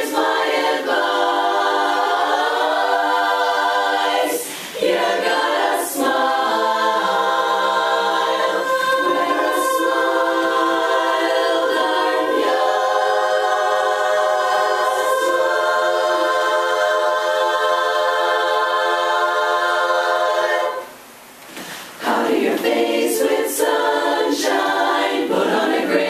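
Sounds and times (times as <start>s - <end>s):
women's chorus singing a cappella: 0.0s - 21.0s, 21.6s - 26.0s.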